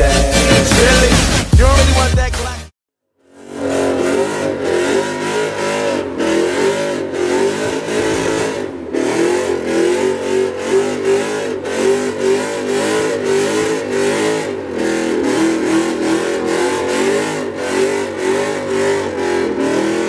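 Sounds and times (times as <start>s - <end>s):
car engine revving: 0.0s - 2.6s, 3.2s - 20.0s
tyres spinning on pavement: 3.3s - 20.0s.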